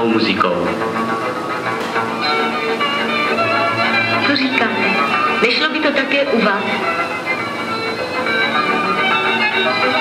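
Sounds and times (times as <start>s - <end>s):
folk band music: 0.0s - 10.0s.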